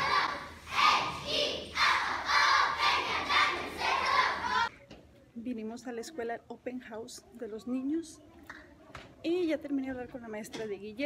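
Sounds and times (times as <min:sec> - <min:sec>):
girls shouting a cheer in unison: 0:00.0 - 0:04.7.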